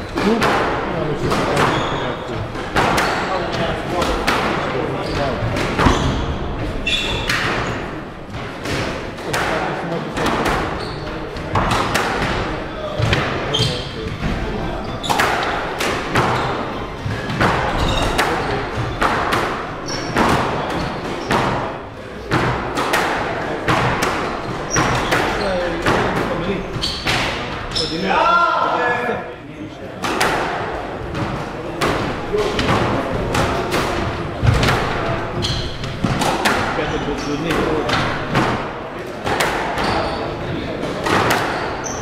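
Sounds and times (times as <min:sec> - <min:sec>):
squash ball smacking walls: 0:00.2 - 0:27.6, 0:30.0 - 0:40.2, 0:40.8 - 0:42.0
shoe squeaks on wooden floor: 0:01.6 - 0:02.3, 0:05.0 - 0:07.8, 0:10.7 - 0:11.3, 0:13.5 - 0:14.0, 0:17.7 - 0:18.7, 0:19.8 - 0:21.4, 0:26.6 - 0:28.2, 0:35.3 - 0:36.0, 0:39.8 - 0:40.4, 0:41.5 - 0:42.0.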